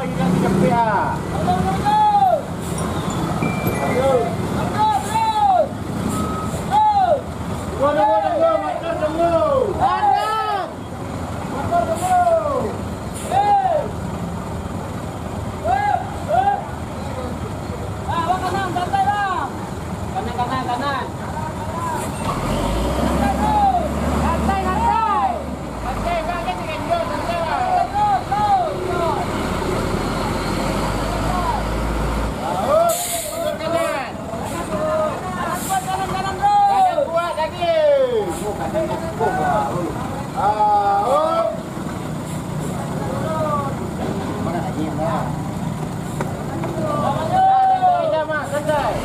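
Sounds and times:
truck diesel engine labouring: 0.0s - 49.0s
people shouting short calls: 9.6s - 10.8s
air brake hiss: 13.1s - 13.4s, 32.8s - 33.5s, 35.6s - 35.9s.

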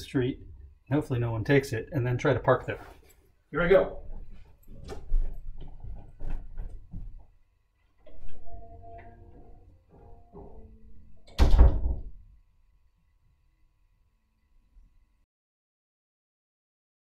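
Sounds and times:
footsteps: 2.6s - 11.0s
door shutting with a thud: 10.3s - 12.3s.

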